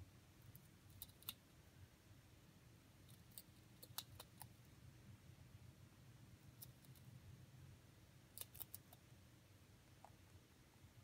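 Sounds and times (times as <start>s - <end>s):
rabbit gnawing crunches: 0.3s - 1.6s, 2.9s - 4.7s, 6.2s - 9.2s.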